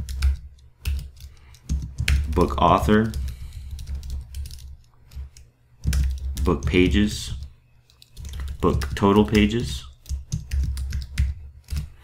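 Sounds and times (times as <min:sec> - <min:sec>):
typing on a keyboard: 0:00.0 - 0:12.0.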